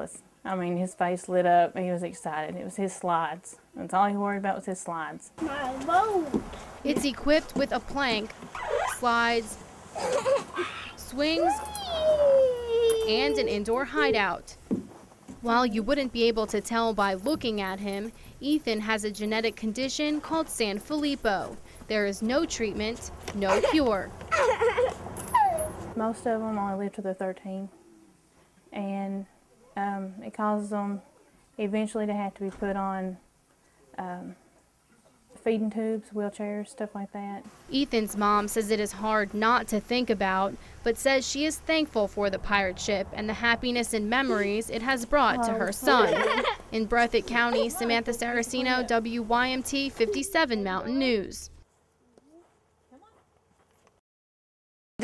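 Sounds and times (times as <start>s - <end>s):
young child calling: 5.4s - 6.4s, 10.0s - 14.1s, 23.5s - 25.8s
boy crying out in play: 10.0s - 13.6s, 24.3s - 25.7s
boy squealing: 10.0s - 13.6s, 24.3s - 25.8s.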